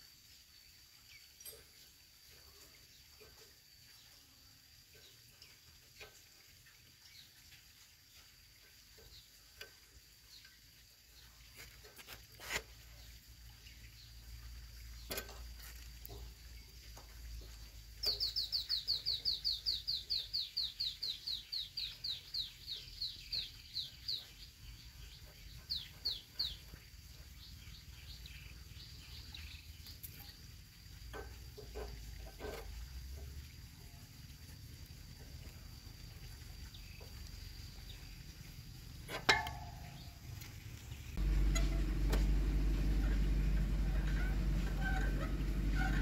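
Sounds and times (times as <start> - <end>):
bird chirping: 16.1 - 30.5, 36.4 - 46.0.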